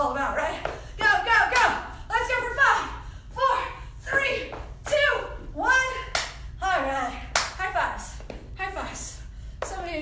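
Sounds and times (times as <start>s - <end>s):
sharp claps: 6.1s - 6.4s, 7.3s - 7.6s.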